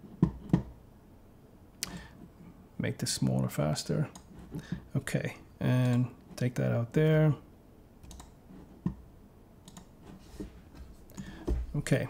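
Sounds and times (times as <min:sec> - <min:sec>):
computer mouse clicks: 0:08.0 - 0:09.0, 0:09.6 - 0:09.9.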